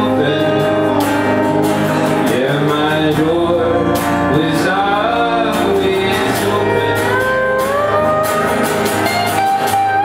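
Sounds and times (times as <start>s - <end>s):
strummed acoustic guitar: 0.0s - 10.0s
sustained gliding melody: 0.4s - 10.0s.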